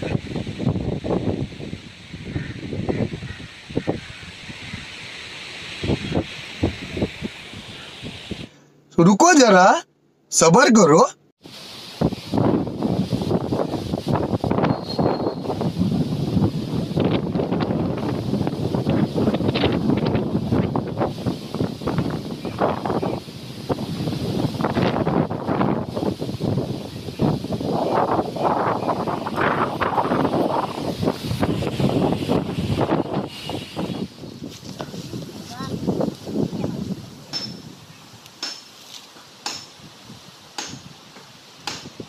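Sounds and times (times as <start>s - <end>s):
wind buffeting microphone: 0.0s - 8.5s, 12.0s - 38.1s.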